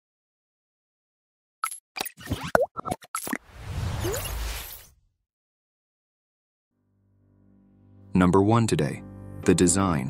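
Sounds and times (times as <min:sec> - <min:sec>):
cartoon pops and plops: 0:02.0 - 0:03.4.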